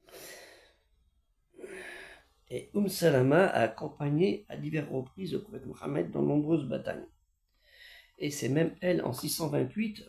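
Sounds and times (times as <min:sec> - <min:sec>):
man breathing close to microphone: 0:00.0 - 0:02.4, 0:07.5 - 0:08.2.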